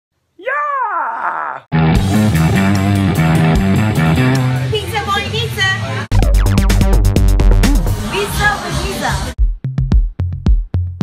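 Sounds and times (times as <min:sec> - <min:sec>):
man's drawn-out vocal cry: 0:00.4 - 0:01.7
rock music with guitar: 0:01.8 - 0:04.6.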